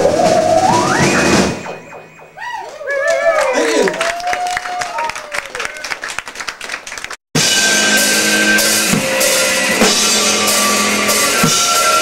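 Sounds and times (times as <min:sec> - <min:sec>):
live band playing: 0:00.0 - 0:03.7, 0:07.4 - 0:12.0
high wavering tones: 0:00.0 - 0:03.9.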